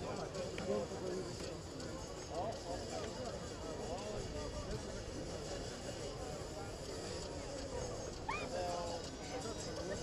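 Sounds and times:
steady outdoor background: 0:00.0 - 0:10.0.

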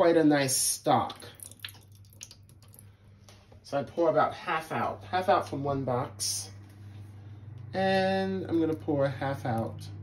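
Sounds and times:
liquid trickling into steel sink: 0:01.3 - 0:02.9
small drip ticks: 0:01.4 - 0:02.9.

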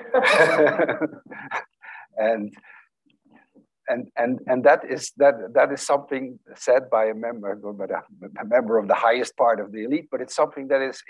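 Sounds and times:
people laughing: 0:00.0 - 0:01.8.

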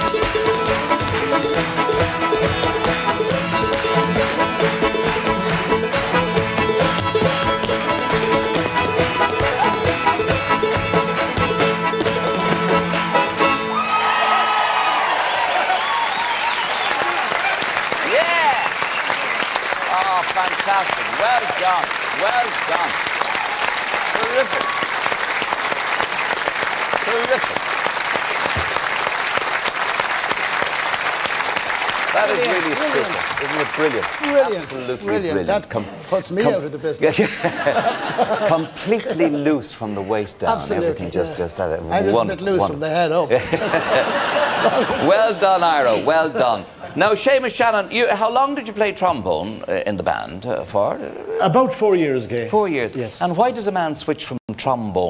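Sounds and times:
hard shoes dancing percussive steps: 0:00.0 - 0:13.7
old-time string-band tune: 0:00.0 - 0:13.8
audience applauding and cheering: 0:00.0 - 0:35.0.

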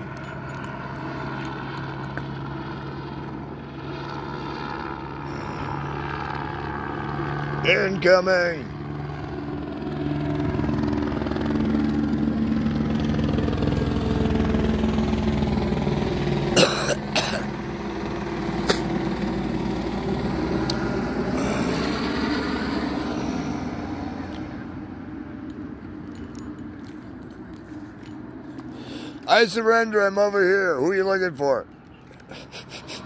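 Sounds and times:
helicopter flying overhead: 0:00.0 - 0:33.0.

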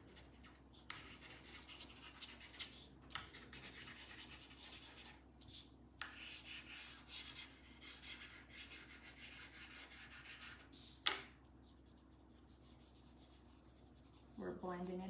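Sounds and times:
chalk pastel scratching on paper: 0:00.0 - 0:15.0.

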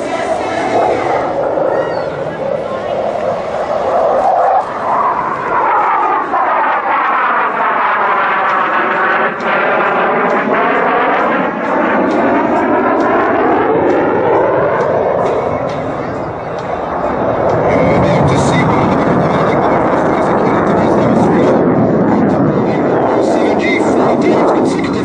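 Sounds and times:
jet flying past: 0:00.0 - 0:25.0.

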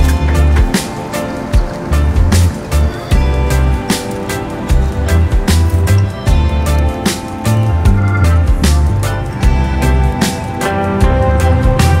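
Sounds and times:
pulsing bass line: 0:01.6 - 0:03.9, 0:04.7 - 0:12.0.

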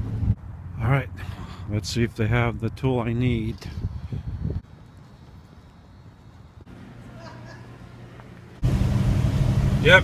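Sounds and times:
vehicle cabin engine and road drone: 0:04.5 - 0:10.0.

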